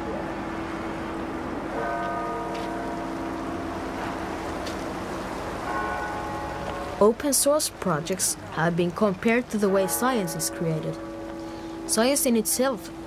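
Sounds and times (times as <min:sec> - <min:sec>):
street noise: 0:00.0 - 0:13.0
bells ringing: 0:01.7 - 0:04.3, 0:05.6 - 0:07.2.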